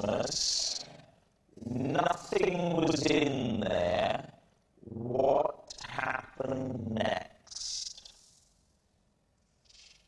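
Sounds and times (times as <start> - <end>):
man's voice: 0.0 - 1.0, 1.6 - 4.3, 5.0 - 8.1.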